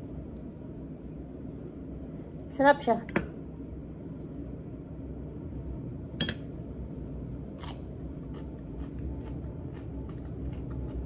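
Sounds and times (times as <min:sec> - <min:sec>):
radish being bitten and chewed: 0:07.6 - 0:11.0.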